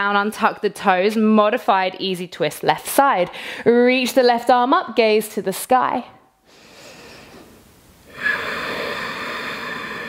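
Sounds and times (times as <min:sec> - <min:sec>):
woman breathing: 0:03.3 - 0:03.7, 0:06.4 - 0:10.0.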